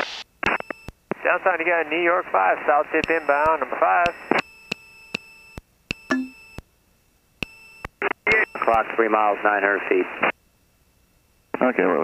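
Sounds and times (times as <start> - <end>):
faint steady tones: 0.4 - 12.0
sharp electronic clicks: 3.0 - 6.7, 7.4 - 8.9.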